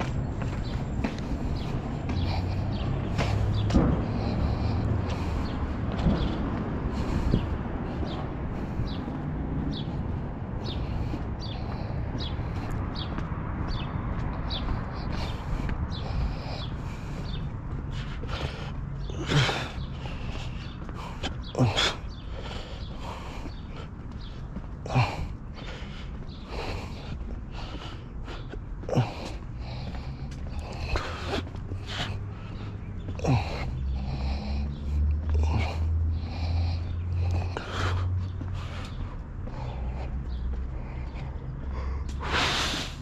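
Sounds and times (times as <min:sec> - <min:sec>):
footsteps on pavement: 0:00.0 - 0:43.0.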